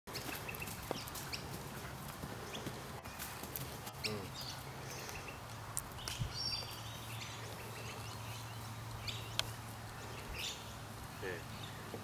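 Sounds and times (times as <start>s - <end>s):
hooves on loose dirt: 0.1s - 12.0s.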